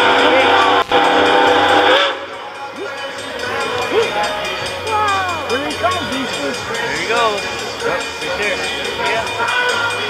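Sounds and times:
steam hiss: 0:00.0 - 0:02.4
steam locomotive whistle: 0:00.0 - 0:03.0.

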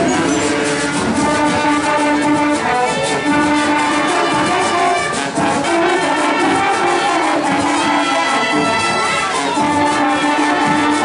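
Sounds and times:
brass horns melody: 0:00.0 - 0:11.0
steady drum beat: 0:00.0 - 0:11.0.

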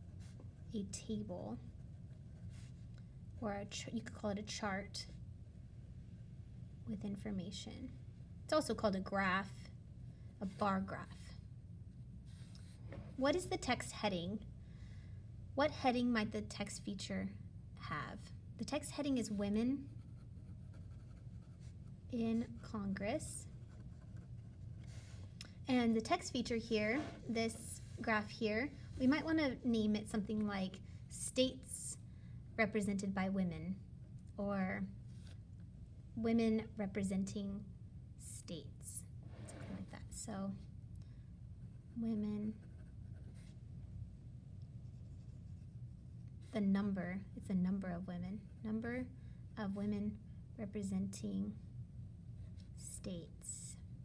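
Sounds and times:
low steady hum: 0:00.0 - 0:54.0
pen scratching on paper: 0:19.0 - 0:25.3, 0:26.4 - 0:28.4, 0:41.6 - 0:43.6, 0:44.8 - 0:46.5.

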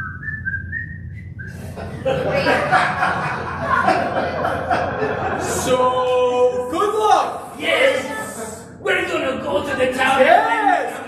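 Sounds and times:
person whistling quick notes: 0:00.0 - 0:01.6.

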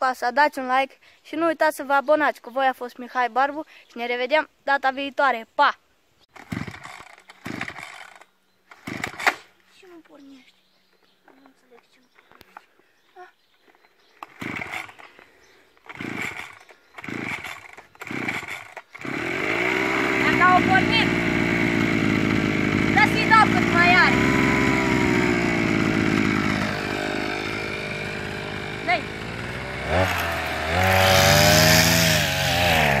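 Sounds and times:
engine turning over rattle: 0:06.3 - 0:09.4, 0:14.2 - 0:33.0
starter cord yanked: 0:06.3 - 0:09.5, 0:14.2 - 0:19.2
cutting head through grass: 0:06.4 - 0:08.2, 0:14.2 - 0:33.0.

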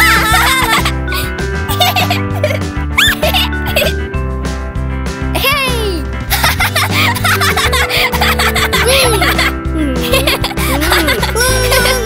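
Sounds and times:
cartoon characters giggling: 0:00.0 - 0:04.0, 0:06.3 - 0:12.0
background music: 0:00.0 - 0:12.0.

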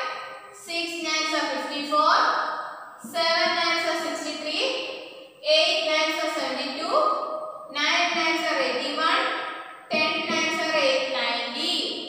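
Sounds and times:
woman chanting numbers: 0:09.9 - 0:11.9.

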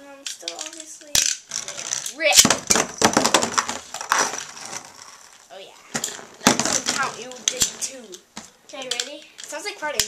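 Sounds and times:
spinning tops clashing and rattling: 0:00.2 - 0:02.5.

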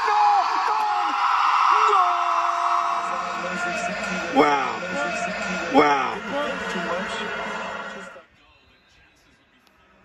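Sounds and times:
sports commentator speaking: 0:02.9 - 0:09.5.

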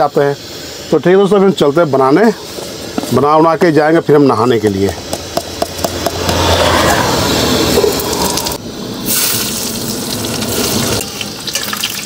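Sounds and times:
hot oil sizzling: 0:00.0 - 0:12.0.

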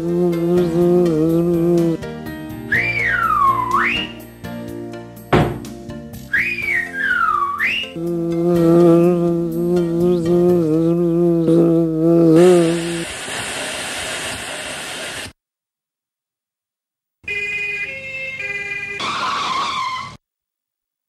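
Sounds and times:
wavering pitched tune: 0:02.7 - 0:04.3, 0:06.3 - 0:10.3
ambulance two-tone siren: 0:02.8 - 0:04.2, 0:06.4 - 0:07.9, 0:17.2 - 0:20.2
loud hiss: 0:12.4 - 0:15.4.

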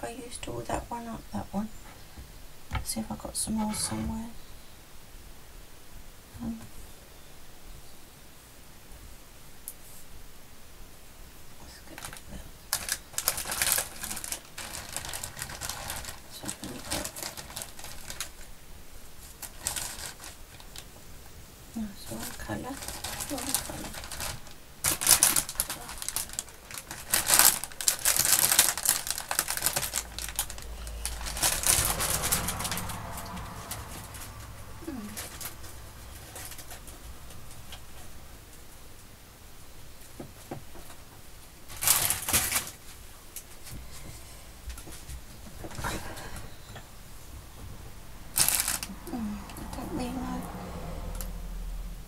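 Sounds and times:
plastic bag crinkling: 0:11.9 - 0:20.9, 0:21.8 - 0:38.1, 0:41.6 - 0:43.8, 0:48.3 - 0:49.2.

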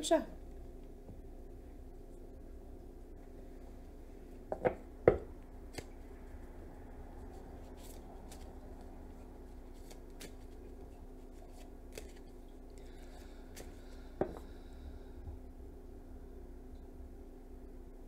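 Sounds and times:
low steady hum: 0:00.0 - 0:18.0
cards being shuffled: 0:05.7 - 0:05.9, 0:07.7 - 0:12.5.

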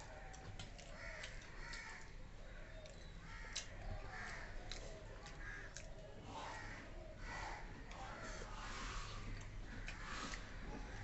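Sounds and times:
crow cawing: 0:01.0 - 0:02.0, 0:03.3 - 0:04.5, 0:05.4 - 0:05.7, 0:06.4 - 0:08.4.

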